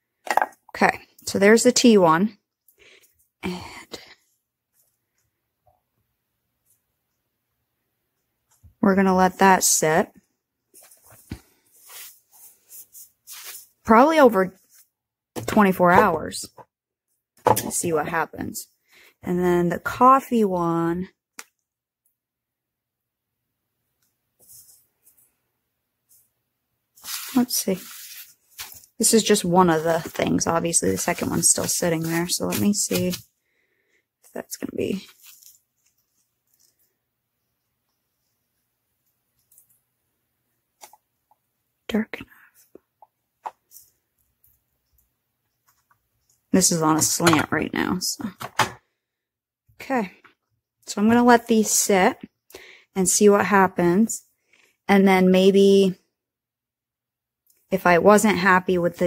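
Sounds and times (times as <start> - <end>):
wet paper squishing and rustling: 10.7 - 13.8, 27.0 - 33.3, 34.9 - 36.7.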